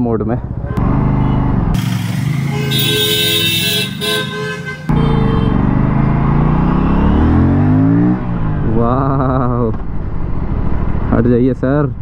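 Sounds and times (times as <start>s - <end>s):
motorcycle engine accelerating: 0.8s - 11.1s
vehicle horn: 2.2s - 5.7s.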